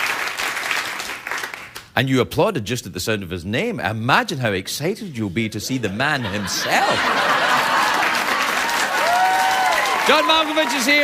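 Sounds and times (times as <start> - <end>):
audience applauding: 0.0 - 1.8, 6.8 - 11.0.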